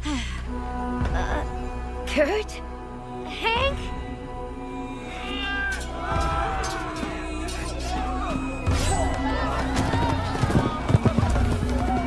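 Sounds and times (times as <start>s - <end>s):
background music: 0.0s - 12.0s
voices: 5.0s - 12.0s
camel footfalls: 9.5s - 12.0s.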